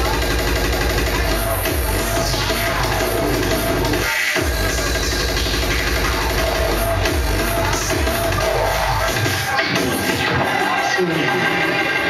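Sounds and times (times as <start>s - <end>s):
drum and bass club music: 0.0s - 12.0s
heavy distorted bass: 0.0s - 12.0s.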